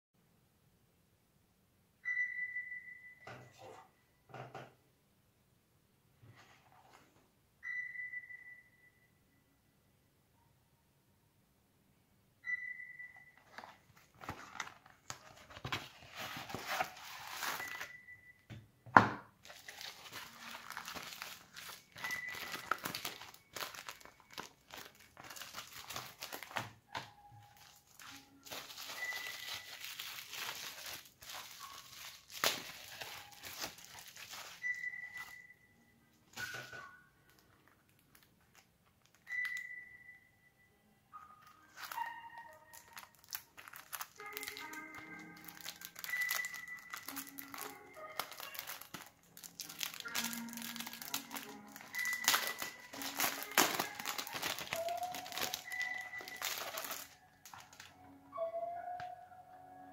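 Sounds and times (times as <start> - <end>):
background music with held notes: 12.4 - 37.8, 39.1 - 59.9
bubble wrap and paper crinkling: 13.4 - 18.0, 19.4 - 35.5, 36.4 - 39.7, 41.5 - 58.0.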